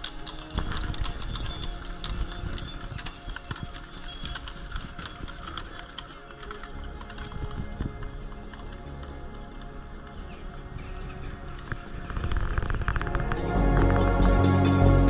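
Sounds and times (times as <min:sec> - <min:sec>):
horse hooves on cobblestones: 0:00.0 - 0:15.0
music: 0:00.0 - 0:15.0.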